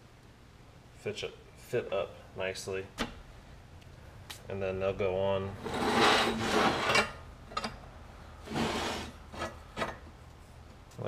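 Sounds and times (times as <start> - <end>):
steel scraping across metal table: 5.6 - 7.2, 8.4 - 9.6.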